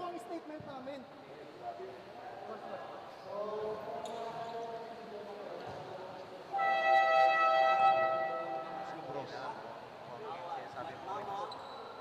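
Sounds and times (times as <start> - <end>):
basketball buzzer tone: 6.6 - 8.9.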